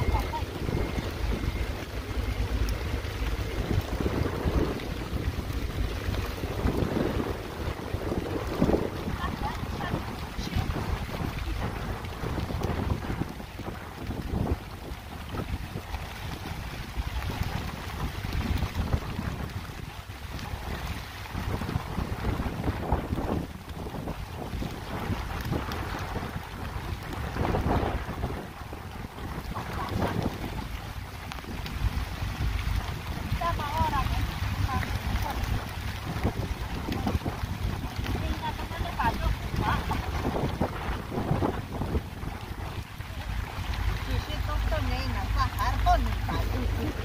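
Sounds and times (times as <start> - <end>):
wind buffeting microphone: 0.0 - 47.0.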